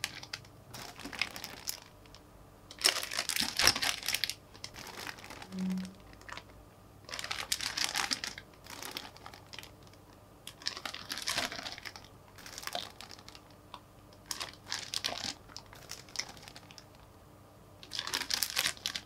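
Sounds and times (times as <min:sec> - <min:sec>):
plastic bags crinkling: 0:00.0 - 0:06.5, 0:07.1 - 0:13.5, 0:14.2 - 0:16.9, 0:17.8 - 0:19.0.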